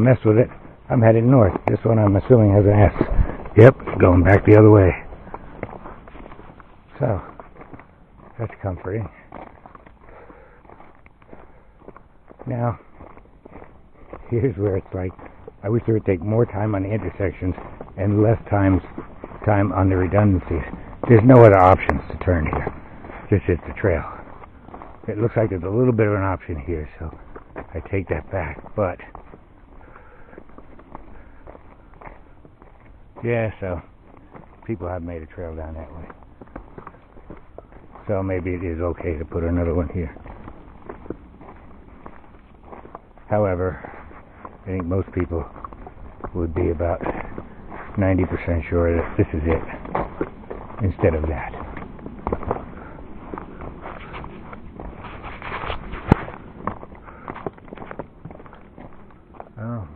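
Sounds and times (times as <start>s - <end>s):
footsteps on gravel: 0.0s - 59.9s
low background noise: 0.0s - 59.9s.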